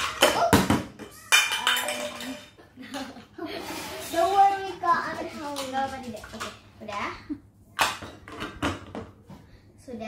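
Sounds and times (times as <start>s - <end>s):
child's voice: 3.9s - 7.4s, 9.8s - 10.0s.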